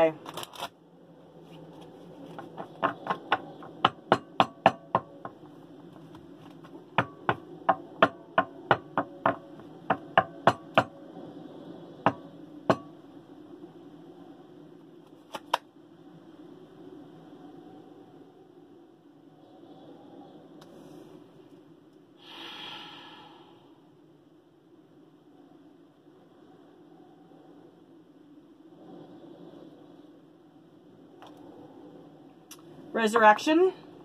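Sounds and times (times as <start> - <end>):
cards being shuffled: 15.0 - 15.6.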